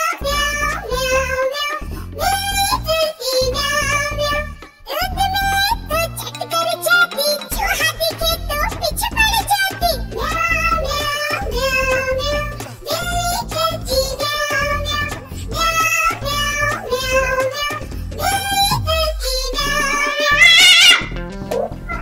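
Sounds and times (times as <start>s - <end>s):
child-like voice singing nursery rhyme: 0.0s - 21.0s
backing music: 0.2s - 22.0s.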